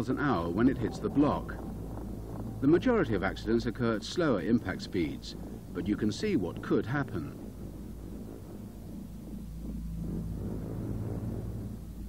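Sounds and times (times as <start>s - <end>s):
faint held hum: 0.0s - 12.0s
low steady rumble: 0.0s - 12.0s.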